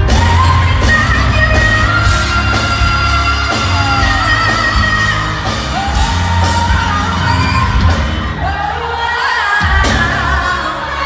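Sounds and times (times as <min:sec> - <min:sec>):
bass and drums backing: 0:00.0 - 0:11.0.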